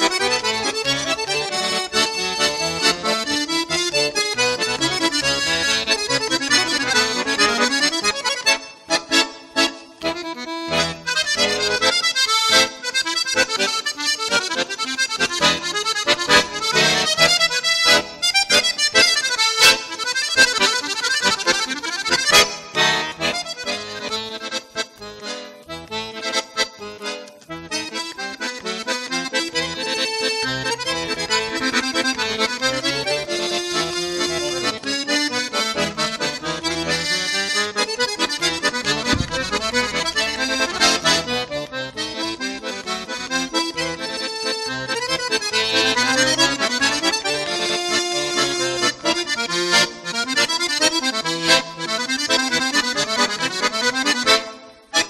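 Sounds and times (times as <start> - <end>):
button accordion playing: 0.0 - 55.0.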